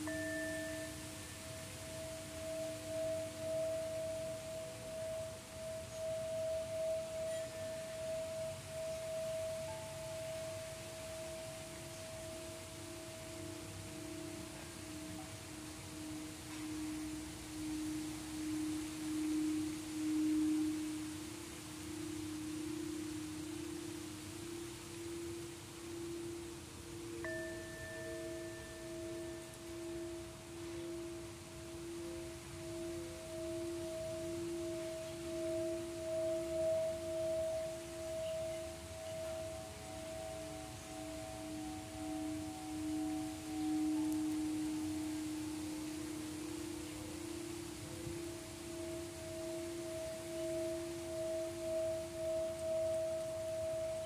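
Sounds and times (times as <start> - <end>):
higher singing bowl struck: 0.0 - 12.3, 13.0 - 54.0
singing bowl humming: 0.0 - 54.0
third higher bowl tone: 0.0 - 54.0.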